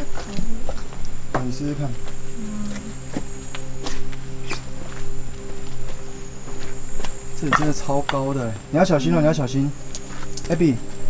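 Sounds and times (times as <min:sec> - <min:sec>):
background music with low tones: 0:00.0 - 0:11.0.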